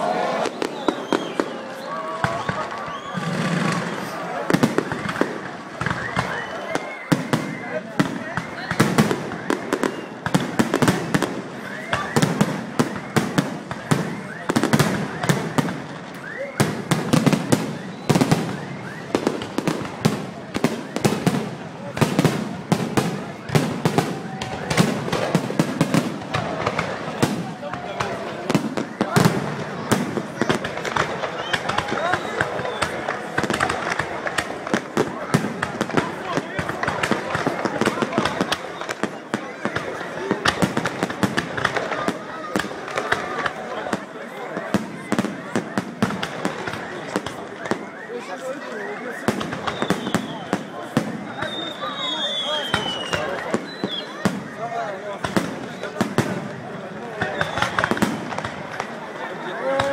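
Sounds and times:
fireworks bangs and crackles: 0.0 - 59.9.

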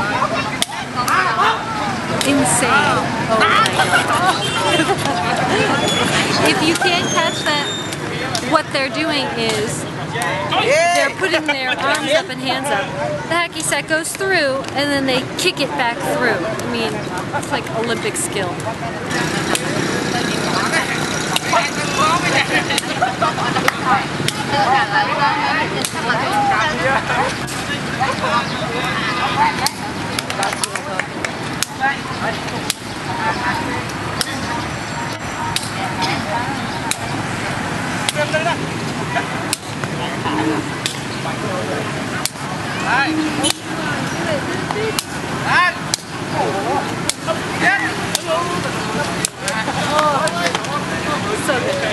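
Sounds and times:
men calling out: 0.0 - 13.5
men's voices: 0.0 - 13.5, 14.3 - 51.9
passing road traffic: 0.0 - 51.9.

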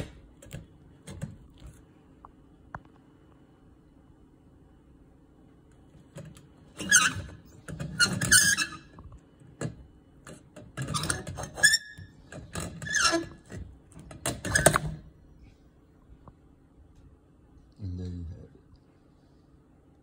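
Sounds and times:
light bulb scraping and squeaking: 6.7 - 9.0, 10.8 - 15.0.

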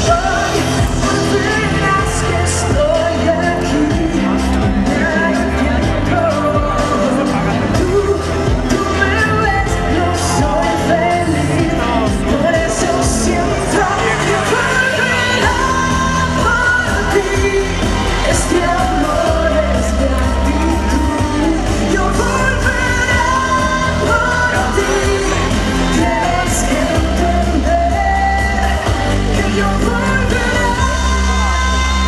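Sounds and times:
amplified pop backing music: 0.0 - 32.0
woman singing pop ballad: 0.0 - 32.0.

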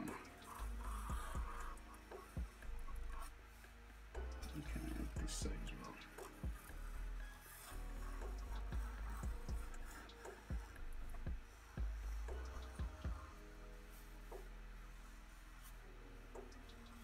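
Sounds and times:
marker drawing on paper: 0.0 - 15.8.

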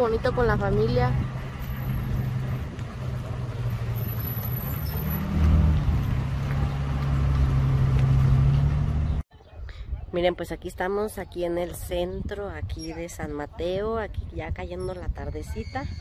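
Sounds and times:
road noise: 0.0 - 10.0
car engine hum: 0.2 - 9.2.

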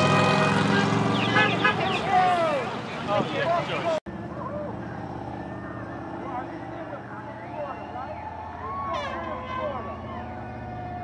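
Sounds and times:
road traffic hum: 0.0 - 11.0
faint voices: 1.7 - 11.0.

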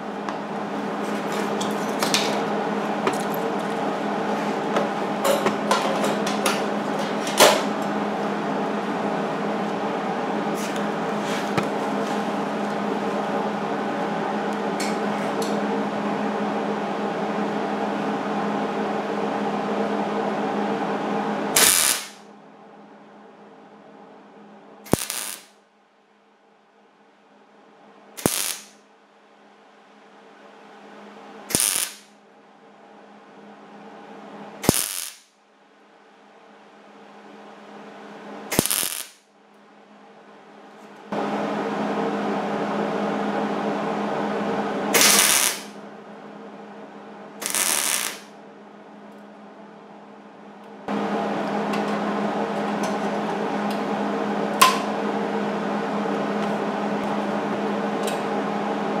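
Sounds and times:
machine hum: 0.0 - 59.0
welding arc bursts: 21.6 - 22.2, 24.9 - 25.5, 28.2 - 28.8, 31.5 - 32.1, 34.6 - 35.3, 38.5 - 39.2, 45.0 - 45.8, 47.4 - 48.3.

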